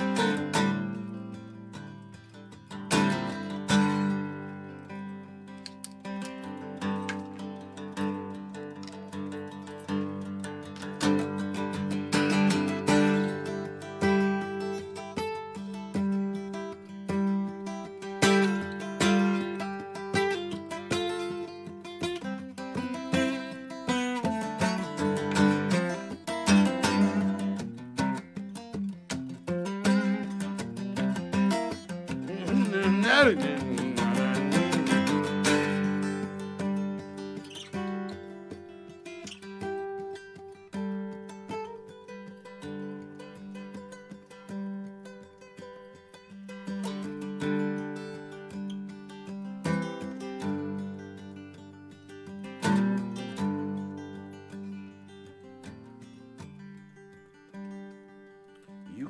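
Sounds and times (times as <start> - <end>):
acoustic guitar picked and strummed: 0.0 - 59.0.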